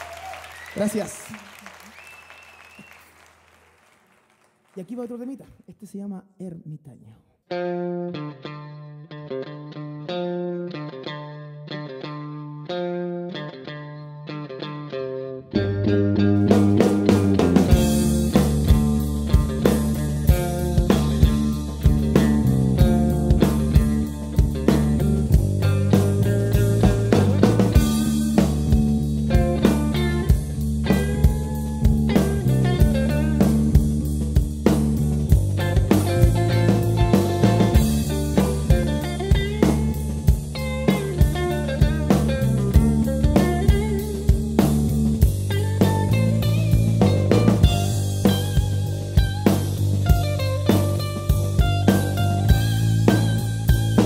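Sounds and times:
electric guitar: 0:07.4 - 0:54.0
electric bass: 0:15.3 - 0:54.0
drum kit: 0:16.4 - 0:54.0.

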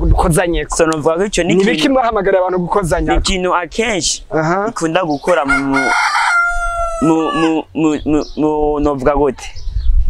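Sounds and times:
man talking: 0:00.0 - 0:06.2, 0:07.0 - 0:09.6
rooster crowing: 0:05.3 - 0:07.7.

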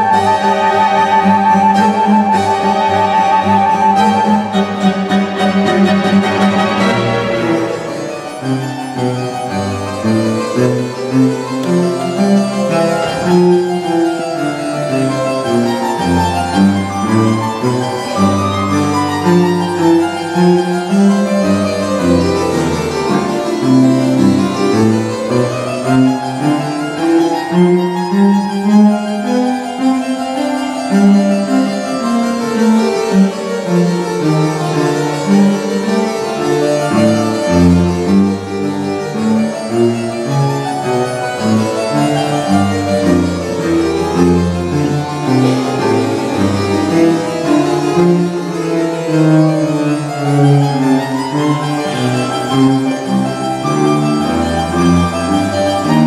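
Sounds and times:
string orchestra playing: 0:00.0 - 0:56.0.

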